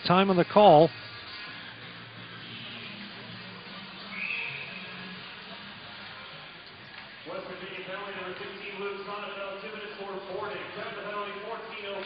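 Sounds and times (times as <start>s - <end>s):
music over arena sound system: 0.0s - 12.0s
low crowd murmur: 0.9s - 12.0s.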